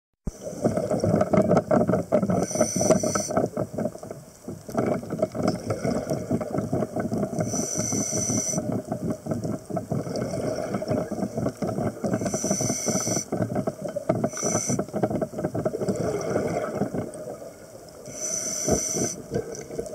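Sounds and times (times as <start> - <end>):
underwater bubbling: 0.3 - 19.9
diver breathing through regulator: 2.3 - 3.5, 7.4 - 8.8, 12.0 - 13.4, 14.2 - 15.0, 18.0 - 19.2.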